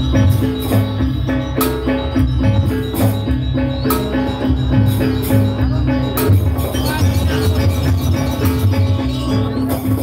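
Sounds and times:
drums: 0:00.0 - 0:10.0
metallophones ringing: 0:00.0 - 0:10.0.

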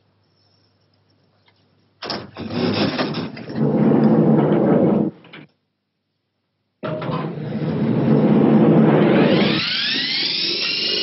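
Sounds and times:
loud machine running: 0:07.3 - 0:11.0.

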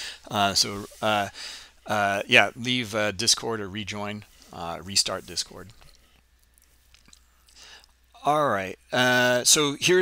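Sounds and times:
soft breath: 0:00.0 - 0:01.8, 0:07.2 - 0:08.0
steady low hum: 0:00.0 - 0:10.0
faint mouth clicks: 0:05.8 - 0:08.0.

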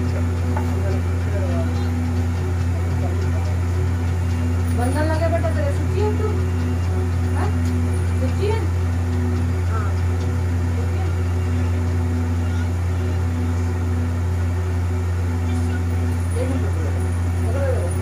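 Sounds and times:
faint voices talking: 0:00.0 - 0:18.0
loud low hum: 0:00.0 - 0:18.0.

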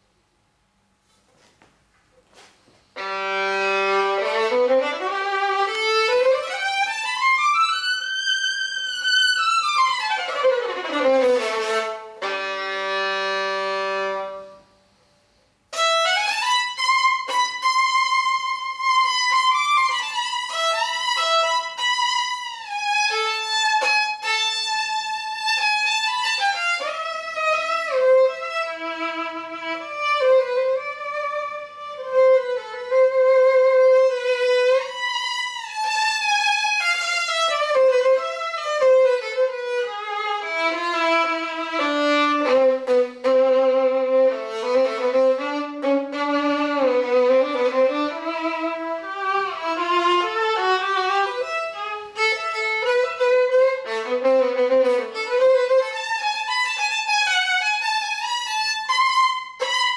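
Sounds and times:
bowed violin: 0:02.4 - 0:14.8, 0:15.7 - 0:59.9.

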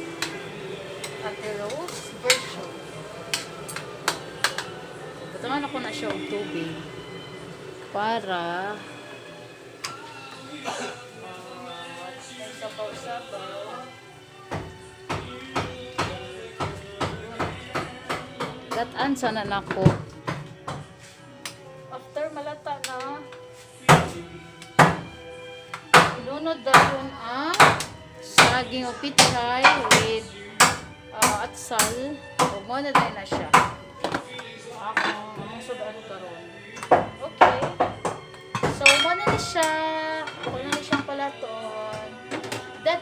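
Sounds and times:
metal ladle scraping a wok: 0:01.0 - 0:02.7.

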